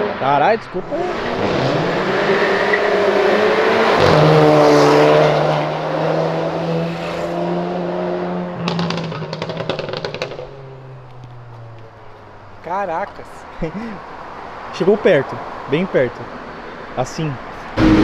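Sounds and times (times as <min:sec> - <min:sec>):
car engine accelerating hard: 0:00.8 - 0:10.5, 0:17.8 - 0:18.0
exhaust crackles: 0:08.6 - 0:11.9, 0:17.8 - 0:18.0.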